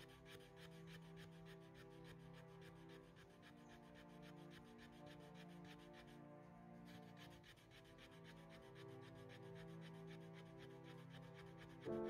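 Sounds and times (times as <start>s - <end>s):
wooden stick rasping in groove: 0.0s - 6.2s, 6.8s - 12.0s
faint background music: 0.0s - 12.0s.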